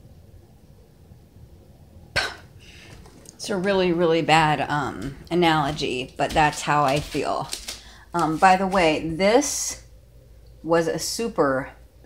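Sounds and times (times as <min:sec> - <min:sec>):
person coughing: 0:02.2 - 0:02.5.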